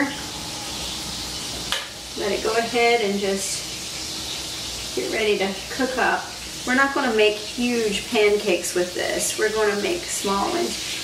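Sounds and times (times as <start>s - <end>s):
batter sizzling on griddle: 0.0s - 11.0s.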